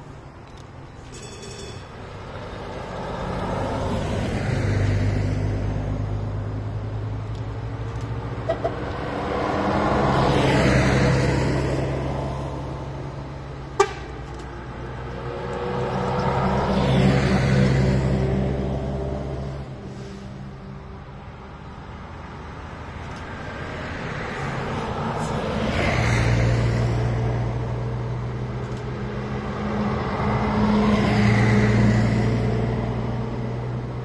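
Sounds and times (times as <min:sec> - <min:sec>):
buses driving past: 0:00.0 - 0:34.0
bus horn toots: 0:13.8 - 0:14.3.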